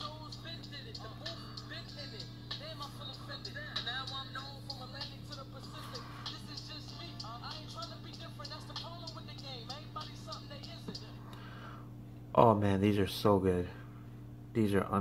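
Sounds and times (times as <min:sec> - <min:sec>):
faint song leaking from headphones: 0:00.0 - 0:11.4
low hum: 0:00.0 - 0:14.9.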